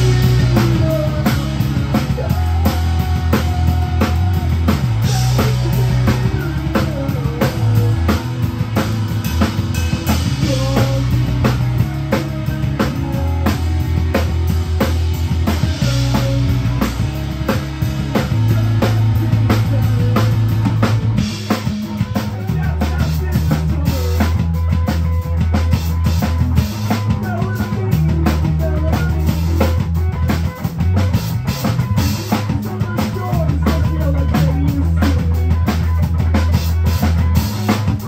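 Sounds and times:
drum kit: 0:00.0 - 0:38.0
electric bass notes: 0:00.0 - 0:38.0
electric guitars: 0:00.0 - 0:38.0.

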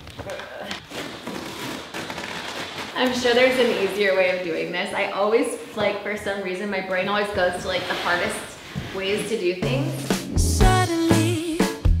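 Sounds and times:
cardboard flaps and paper rustling: 0:00.0 - 0:04.4.

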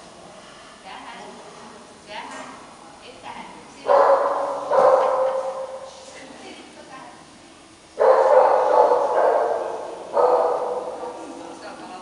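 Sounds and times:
dog barking and yipping: 0:03.9 - 0:05.8, 0:08.0 - 0:11.2.

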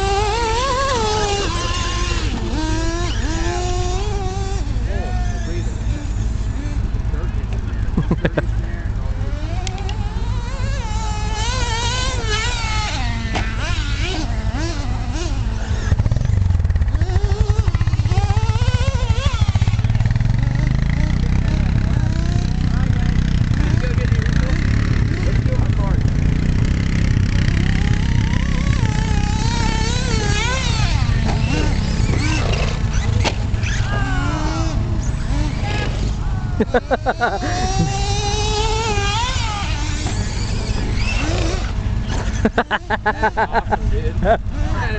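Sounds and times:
electric motors whining: 0:00.0 - 0:44.9
steady low rumble: 0:14.2 - 0:44.9.

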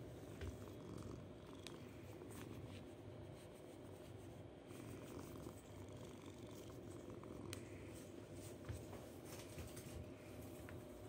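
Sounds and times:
kitten purring: 0:00.0 - 0:07.9.

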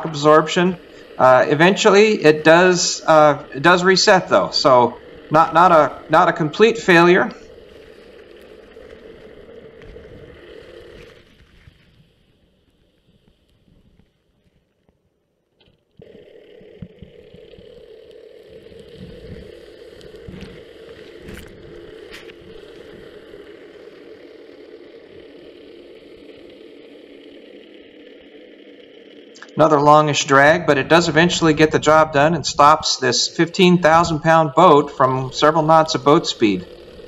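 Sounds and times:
steady underwater hum: 0:00.0 - 0:37.0.

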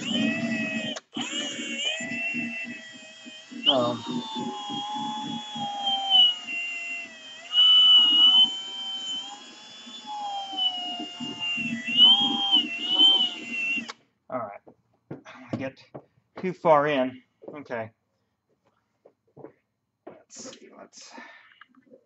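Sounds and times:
cordless drill motor whine: 0:00.0 - 0:14.0.

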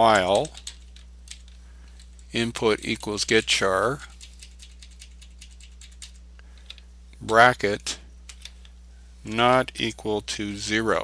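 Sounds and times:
computer keyboard clicks: 0:00.1 - 0:01.6, 0:04.1 - 0:06.8.

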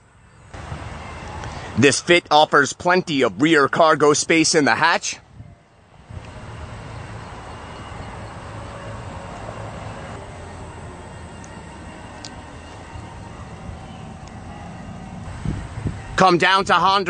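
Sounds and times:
vehicle rumble: 0:00.0 - 0:04.1, 0:05.2 - 0:16.4.

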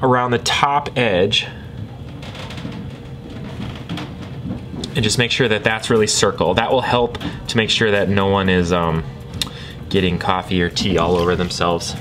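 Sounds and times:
faint wavering hum: 0:00.0 - 0:12.0
potter's wheel spinning: 0:00.8 - 0:12.0.

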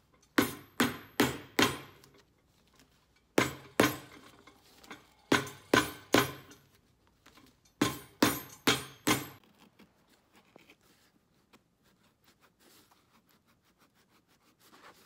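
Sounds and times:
hammer striking boot heel: 0:00.4 - 0:02.0, 0:03.4 - 0:04.2, 0:05.3 - 0:06.6, 0:07.8 - 0:09.4.

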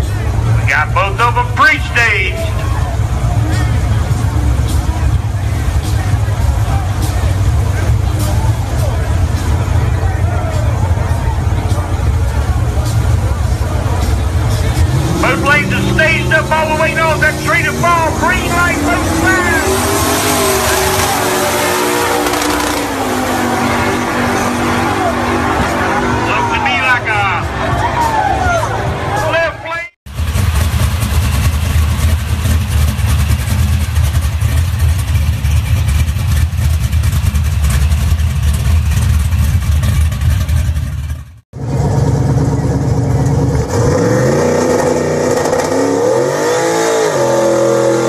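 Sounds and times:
crowd shouting and cheering: 0:00.0 - 0:30.0
drag racing engines rumbling: 0:00.0 - 0:48.0.

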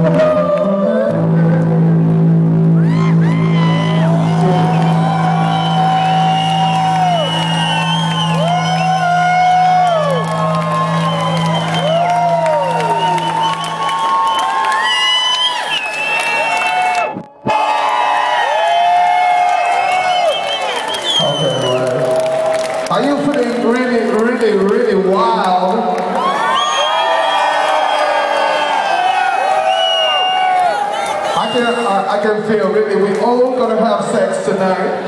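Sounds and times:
electronic house music: 0:00.0 - 0:15.0
crowd whooping and cheering: 0:02.6 - 0:24.5, 0:25.9 - 0:32.6.

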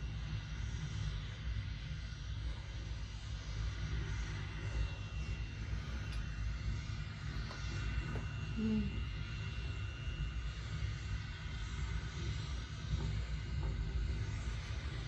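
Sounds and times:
faint high whine: 0:00.0 - 0:15.0.

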